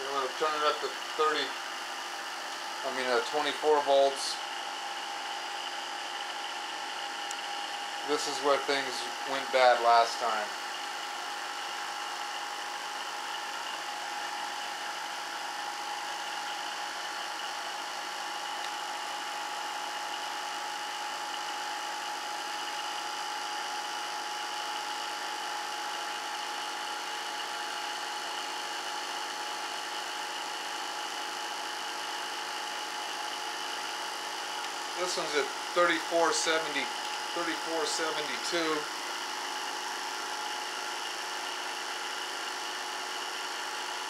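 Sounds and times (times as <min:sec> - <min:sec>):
motor whine: 0:00.0 - 0:44.0.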